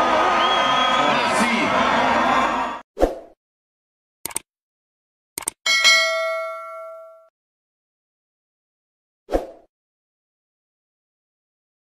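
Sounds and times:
quick mouse clicks: 4.3 - 4.5
notification bell ding: 5.7 - 7.3.

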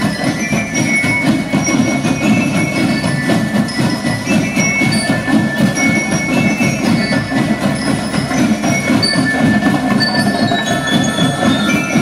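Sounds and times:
high held bell notes: 0.0 - 12.0
marching drum line: 0.0 - 12.0.

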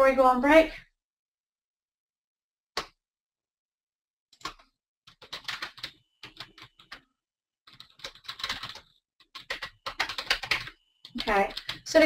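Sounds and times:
computer keyboard typing: 4.4 - 7.1, 7.7 - 12.0.

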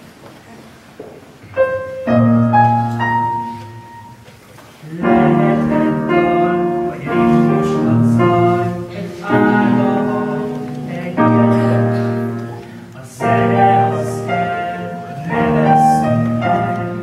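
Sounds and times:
choir singing held chords: 4.8 - 17.0.

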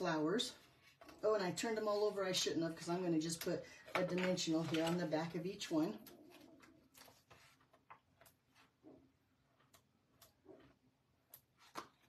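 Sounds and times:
light paper rustles: 4.1 - 5.4, 6.1 - 7.9.

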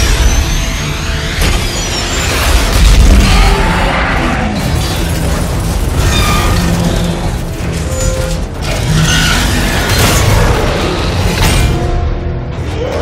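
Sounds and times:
dramatic orchestral music: 0.0 - 13.0.

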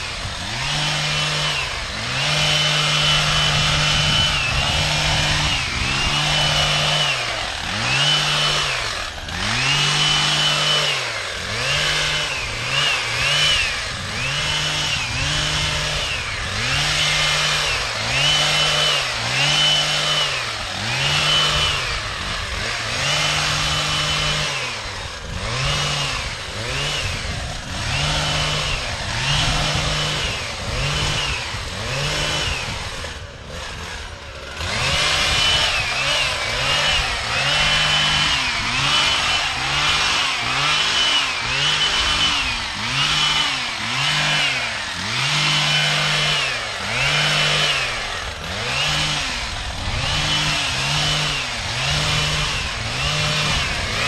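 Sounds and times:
hedge trimmer engine revving: 0.0 - 54.0.

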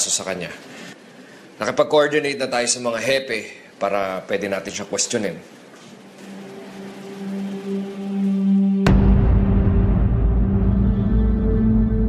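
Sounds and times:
tense dramatic soundtrack music: 6.1 - 12.0.

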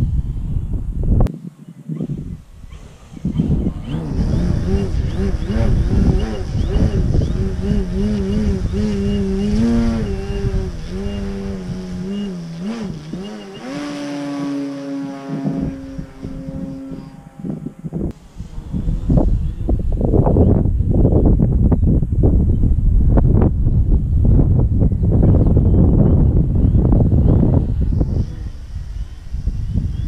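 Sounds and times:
wind buffeting microphone: 0.0 - 30.0
model plane motor and propeller: 2.6 - 20.3, 27.0 - 30.0.

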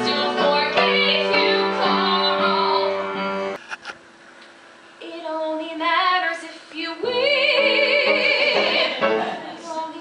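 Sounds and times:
woman singing with vibrato: 0.0 - 3.1, 5.0 - 10.0.

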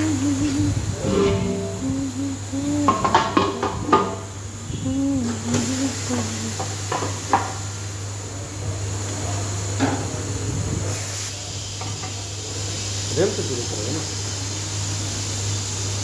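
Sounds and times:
compressed air hissing: 0.0 - 7.5, 10.9 - 11.8
low workshop hum: 0.0 - 13.0.

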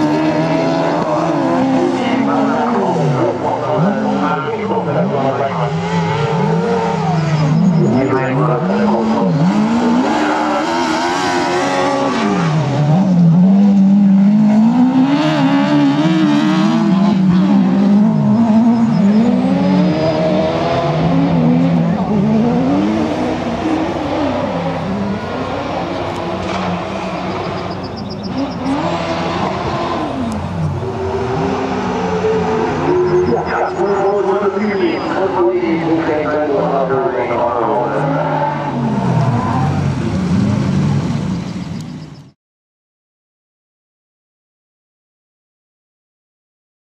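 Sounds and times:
race car engines revving: 0.0 - 42.4.

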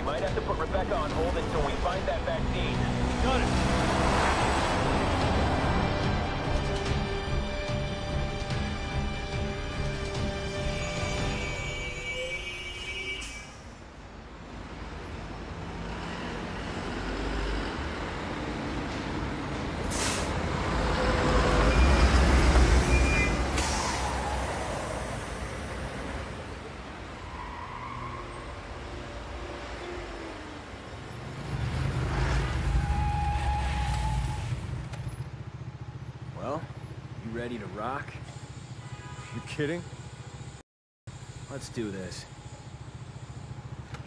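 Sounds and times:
vehicle rumble: 0.0 - 11.5
truck engine rumble: 0.0 - 11.6
air brakes hiss: 19.8 - 20.4, 23.5 - 24.4.

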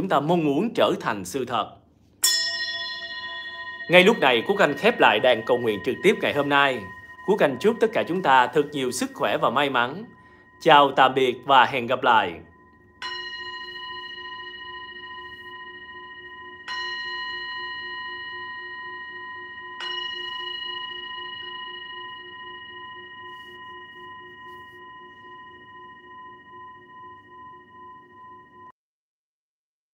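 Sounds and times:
singing bowl struck and ringing: 2.2 - 28.7.

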